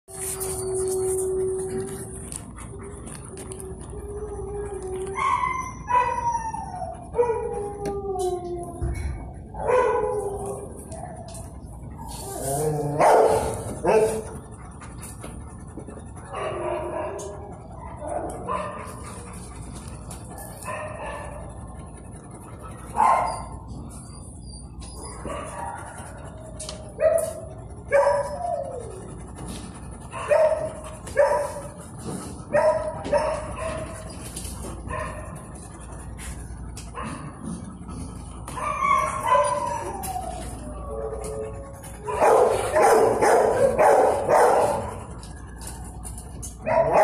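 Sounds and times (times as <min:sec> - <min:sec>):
dogs barking and yelping: 0:00.0 - 0:47.0.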